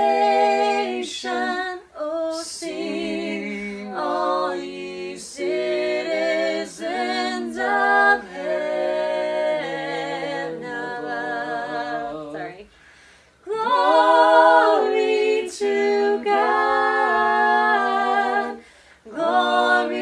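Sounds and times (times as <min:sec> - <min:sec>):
group singing a cappella: 0:00.0 - 0:20.0.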